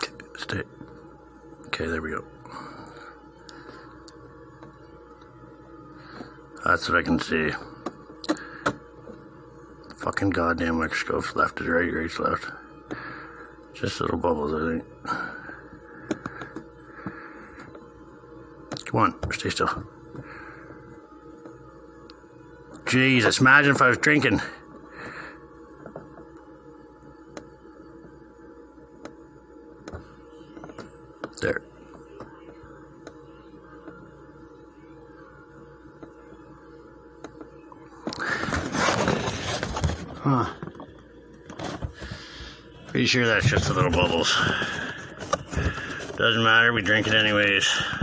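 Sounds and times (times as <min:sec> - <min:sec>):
faint steady hum: 0:00.0 - 0:48.0
phone rustling and scraping: 0:38.0 - 0:48.0.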